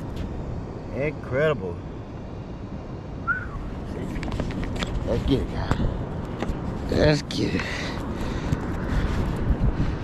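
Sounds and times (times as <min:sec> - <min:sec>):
wind rumbling on microphone: 0:00.0 - 0:10.0
falling whistle-like chirp: 0:03.2 - 0:03.7.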